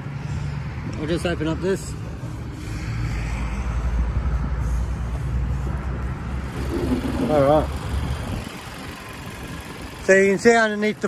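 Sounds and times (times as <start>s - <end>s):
car engine idling: 4.4s - 11.0s.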